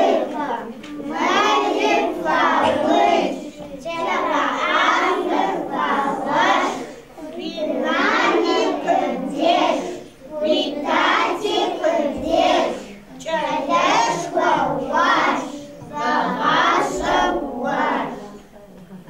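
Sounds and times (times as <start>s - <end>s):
young children singing together: 0.0s - 18.5s.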